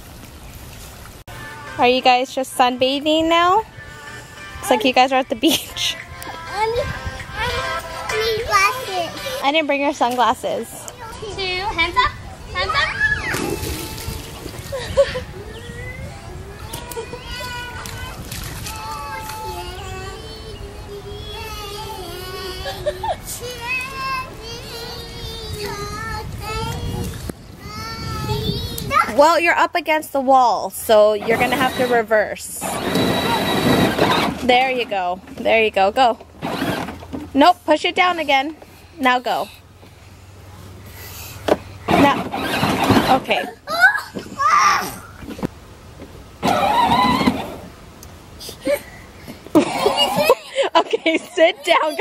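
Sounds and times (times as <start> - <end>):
toddler sing-song vocalising: 3.6 - 4.9, 5.7 - 9.4, 12.8 - 29.2
toy electric motor whining: 31.2 - 34.5, 36.4 - 37.0, 41.9 - 43.3, 46.4 - 47.7.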